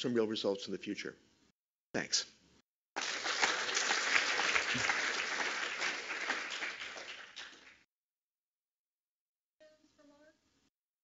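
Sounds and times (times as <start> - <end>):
audience applauding: 3.0 - 7.9.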